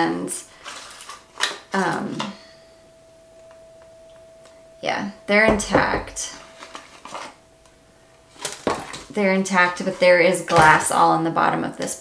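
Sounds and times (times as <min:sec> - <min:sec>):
faint steady tone: 0:00.4 - 0:10.5.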